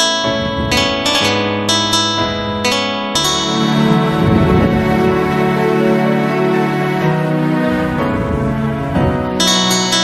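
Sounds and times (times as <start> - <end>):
acoustic guitar picking: 0.0 - 7.2, 8.9 - 10.0
low bass note: 1.6 - 6.8.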